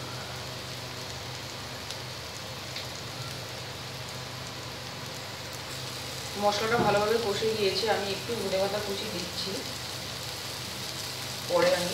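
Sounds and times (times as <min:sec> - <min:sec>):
vegetables sizzling in oil: 0:00.0 - 0:11.9.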